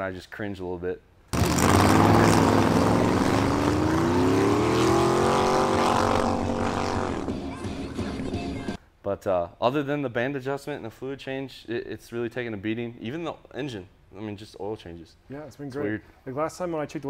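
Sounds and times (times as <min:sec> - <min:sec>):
diesel trucks accelerating: 0:01.4 - 0:08.7.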